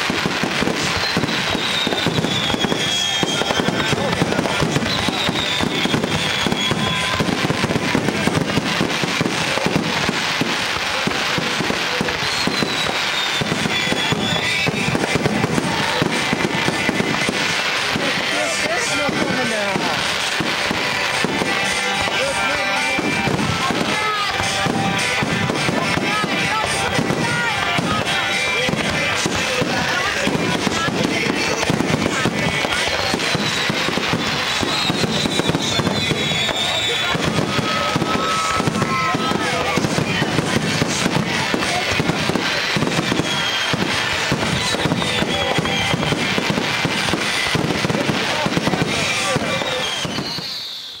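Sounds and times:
fireworks booming and crackling: 0.0s - 51.0s.

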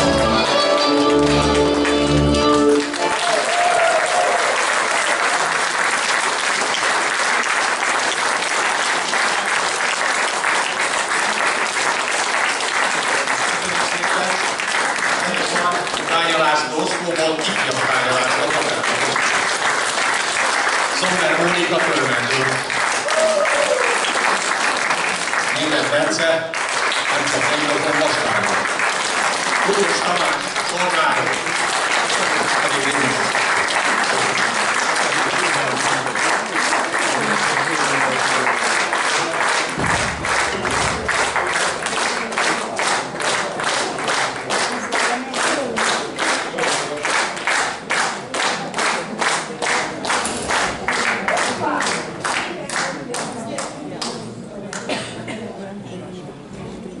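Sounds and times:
audience applause: 0.0s - 54.2s
rhythmic clapping in unison: 0.0s - 55.0s.

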